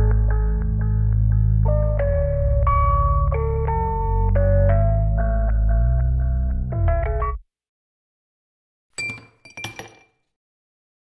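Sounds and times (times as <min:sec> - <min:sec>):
ice cubes clinking against glass: 0:09.0 - 0:10.3.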